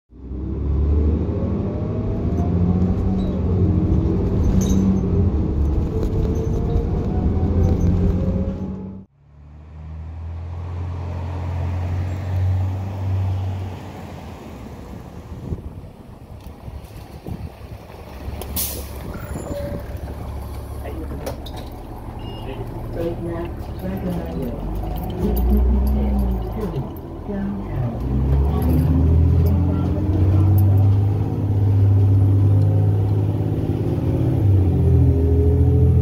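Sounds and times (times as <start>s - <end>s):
bus engine rumble: 0.1s - 36.0s
diesel bus accelerating: 0.1s - 36.0s.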